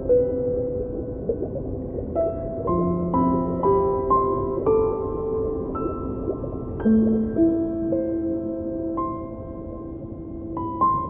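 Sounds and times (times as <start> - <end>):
soft slow piano music: 0.0 - 11.0.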